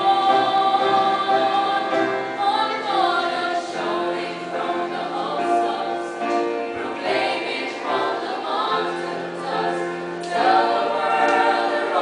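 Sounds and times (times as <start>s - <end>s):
female choir singing in harmony: 0.0s - 12.0s.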